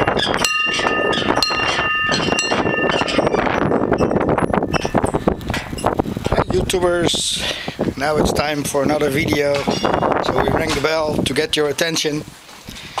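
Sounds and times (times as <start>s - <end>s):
metal bell ringing: 0.0s - 6.0s, 9.6s - 10.5s
outdoor noise: 0.0s - 13.0s.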